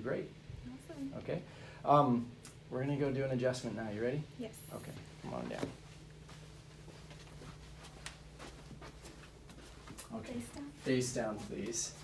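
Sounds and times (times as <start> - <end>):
low room hum: 0.0 - 12.0
footsteps on carpet: 5.0 - 12.0.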